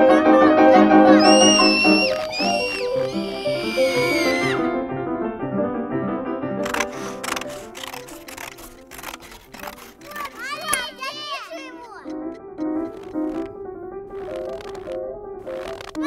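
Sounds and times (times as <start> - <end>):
gentle film score with piano: 0.0 - 16.0
children's voices: 1.0 - 4.6, 9.9 - 12.2
sharp clicks and rustles: 6.6 - 11.0, 11.9 - 13.5, 14.1 - 16.0
child's high drawn-out voice: 10.0 - 12.1.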